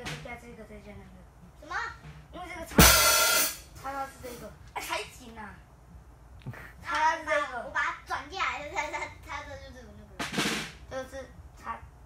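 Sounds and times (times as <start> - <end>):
cymbal struck and ringing: 2.8 - 3.7.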